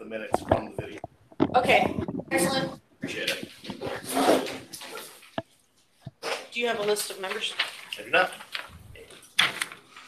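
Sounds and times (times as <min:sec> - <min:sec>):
indistinct talking voices: 0:00.0 - 0:04.8.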